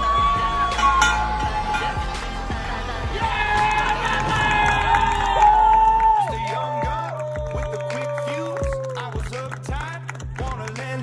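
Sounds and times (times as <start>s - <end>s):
long drawn-out shouts: 0.0s - 9.1s
crowd cheering: 0.0s - 10.0s.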